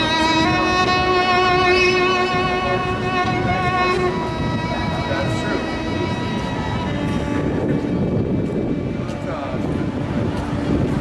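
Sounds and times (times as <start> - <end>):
music with held string note: 0.0 - 9.0
faint indistinct voices: 0.2 - 11.0.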